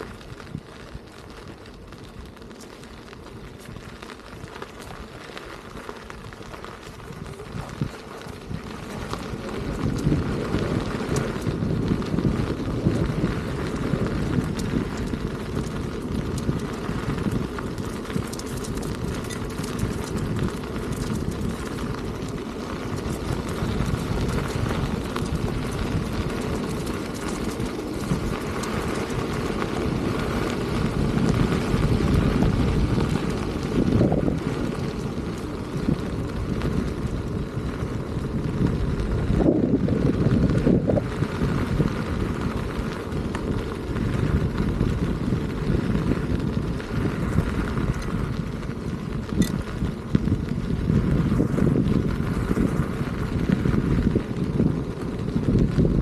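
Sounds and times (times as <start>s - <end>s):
electric unicycle rolling on gravel: 0.0s - 56.0s
wind buffeting microphone: 0.0s - 56.0s.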